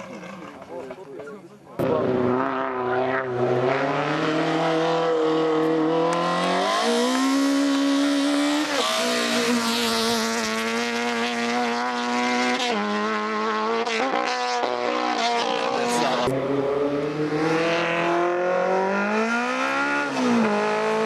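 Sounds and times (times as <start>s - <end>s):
racing car engine revving: 1.8s - 21.0s.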